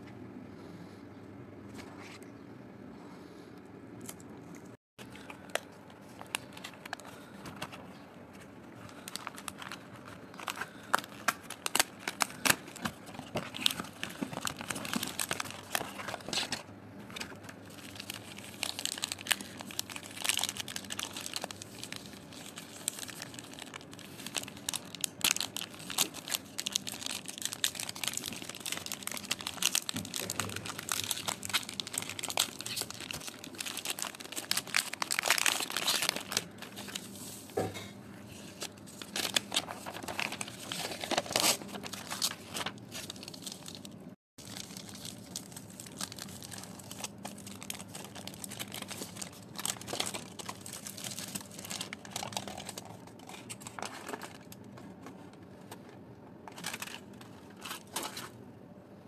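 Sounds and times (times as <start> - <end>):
chocolate wrapper crinkling: 8.7 - 37.1, 38.5 - 54.8, 56.5 - 58.3.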